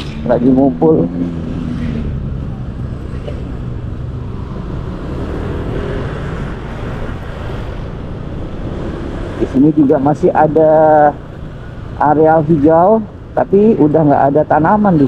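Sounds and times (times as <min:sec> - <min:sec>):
road and wind noise: 0:00.0 - 0:15.0.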